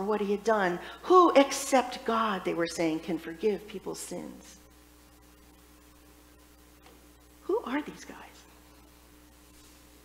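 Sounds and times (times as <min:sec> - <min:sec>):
woman speaking: 0:00.0 - 0:04.6, 0:07.4 - 0:08.5
steady low hum: 0:00.0 - 0:10.0.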